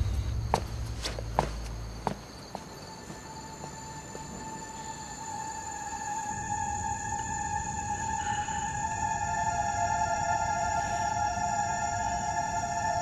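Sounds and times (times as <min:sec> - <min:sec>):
eerie high soundtrack tone: 0:00.0 - 0:02.0, 0:02.8 - 0:13.0
footsteps walking away: 0:00.0 - 0:04.6
low music drone: 0:00.0 - 0:13.0.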